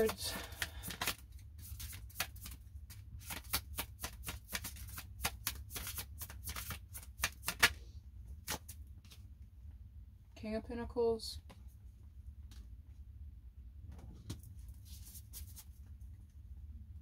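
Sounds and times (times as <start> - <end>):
cards being shuffled: 0.0 - 7.8, 8.4 - 9.2, 14.7 - 15.8.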